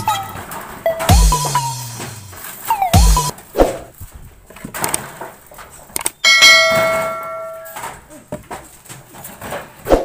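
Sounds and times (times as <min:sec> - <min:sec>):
bright bell-like ding: 0:06.3 - 0:07.8.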